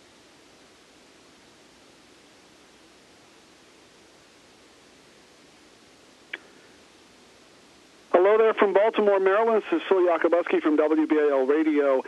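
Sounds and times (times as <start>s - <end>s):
faint line hiss: 0.0s - 12.0s
person speaking over telephone line: 8.1s - 12.0s.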